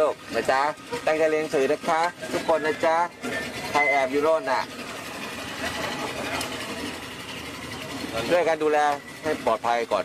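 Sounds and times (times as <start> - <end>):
engine running steadily: 0.0 - 10.0
faint voices: 0.0 - 10.0.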